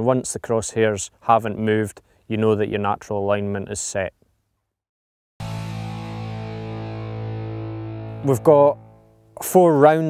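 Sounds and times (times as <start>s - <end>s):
guitar chord held: 5.4s - 9.4s.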